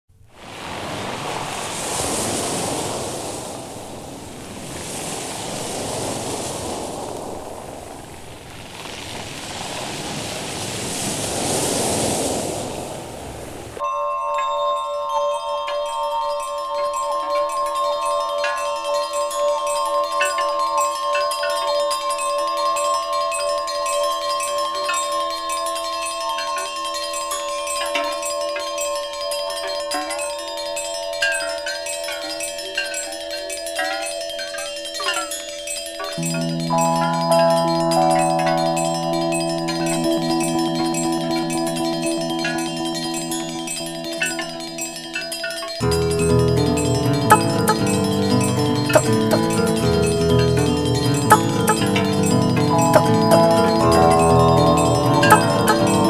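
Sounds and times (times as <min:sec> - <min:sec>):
mallet percussion music: 0:13.8 - 0:56.0.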